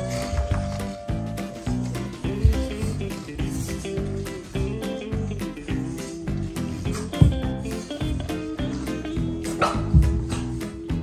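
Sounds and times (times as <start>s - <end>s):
guitar music: 0.0s - 11.0s
dog barking: 9.5s - 10.5s.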